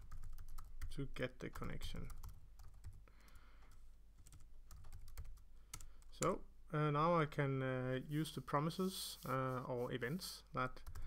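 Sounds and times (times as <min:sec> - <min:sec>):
faint keyboard typing: 0:00.0 - 0:06.4, 0:10.6 - 0:11.0.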